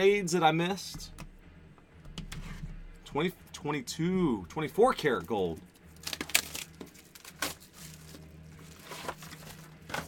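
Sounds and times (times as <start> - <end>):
low steady hum: 0.0 - 10.0
plastic wrap crinkling: 5.8 - 10.0.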